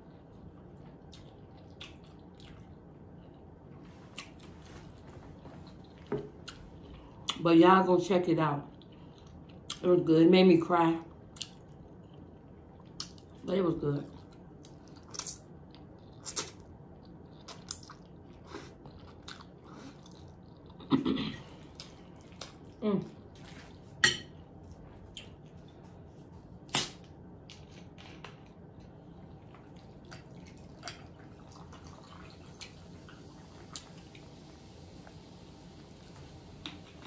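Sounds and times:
slurping and chewing spaghetti: 0.0 - 7.4, 14.1 - 36.1.

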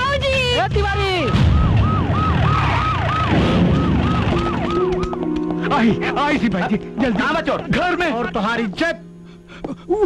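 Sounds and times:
music: 0.0 - 2.2, 3.5 - 10.0
police siren yelping: 1.3 - 5.5.

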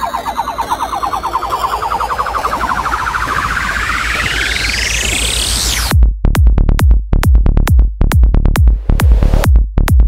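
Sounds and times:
pulsing synthesizer riser: 0.0 - 5.9, 8.7 - 9.5
low bass pulse: 0.0 - 10.0.

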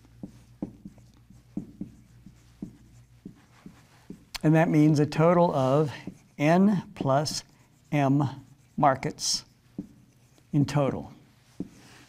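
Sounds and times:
marker writing on a whiteboard: 0.0 - 12.0.

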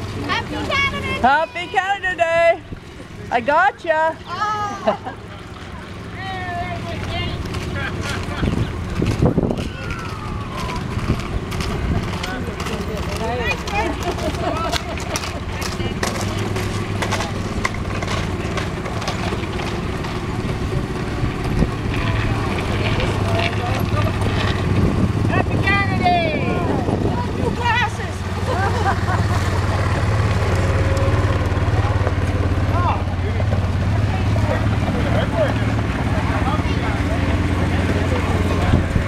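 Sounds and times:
people calling and chattering: 0.0 - 39.0
quad engine running low speed: 0.0 - 39.0.

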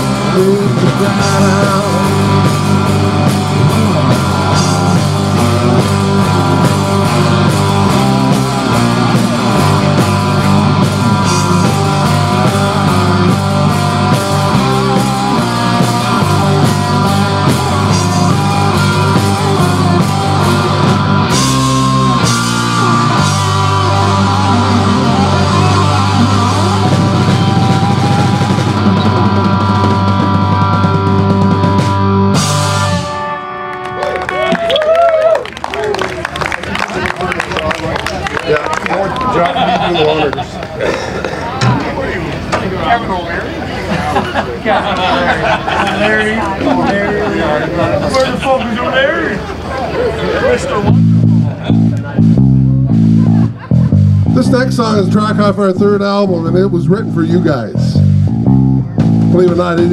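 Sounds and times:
drum kit: 0.0 - 33.4, 50.9 - 59.9
electric guitars: 0.0 - 48.4, 49.4 - 59.9.

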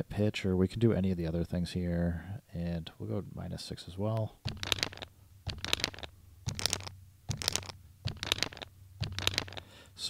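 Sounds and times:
scratchy percussive loop: 4.5 - 9.6.

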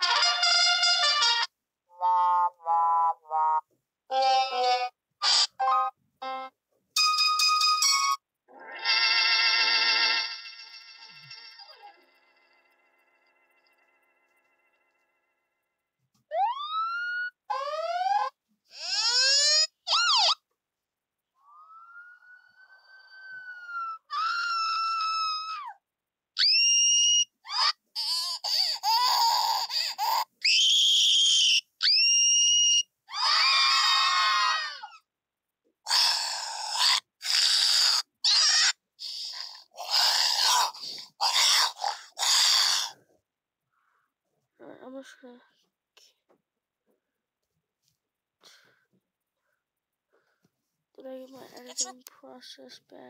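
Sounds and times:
siren wailing: 16.3 - 18.3
recorded screams: 16.3 - 20.4, 21.4 - 25.8, 26.4 - 35.0, 35.8 - 43.0.

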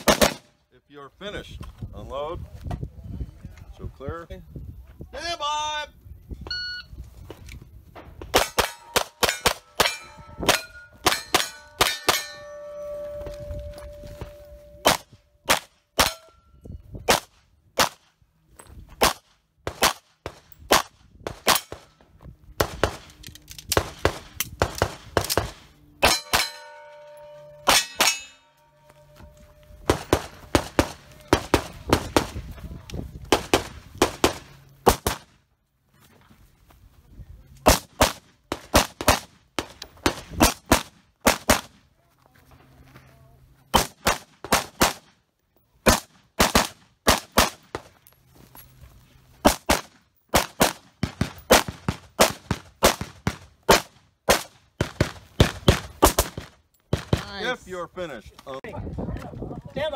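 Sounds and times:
pistol shots: 0.0 - 0.5, 43.7 - 45.1, 45.8 - 47.9, 49.4 - 57.2
steel targets clanging: 8.4 - 13.2, 26.0 - 29.2.

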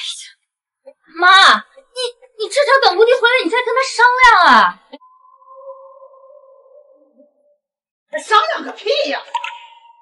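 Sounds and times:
synthesized tone sting: 5.0 - 7.9.

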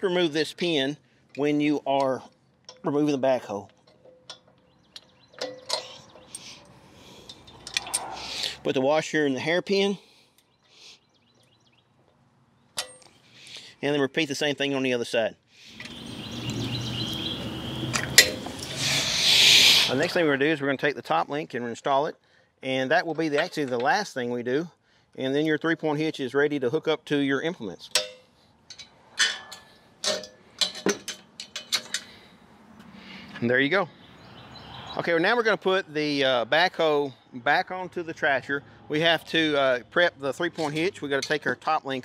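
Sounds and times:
metal clicks and clinks: 3.7 - 8.2, 28.0 - 32.2.

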